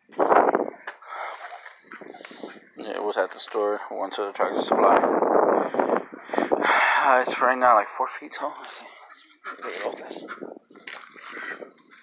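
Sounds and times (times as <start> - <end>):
person talking indistinctly: 9.6 - 10.4.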